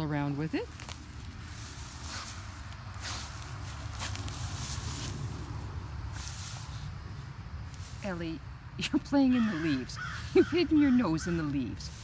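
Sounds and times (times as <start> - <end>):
steady low rumble: 0.0 - 10.4
dry leaves rustling: 0.0 - 12.0.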